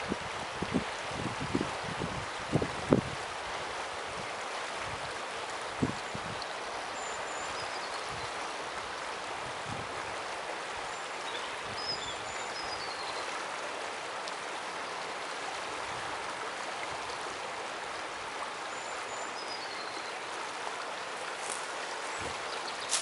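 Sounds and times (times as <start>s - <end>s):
river water rushing: 0.0s - 23.0s.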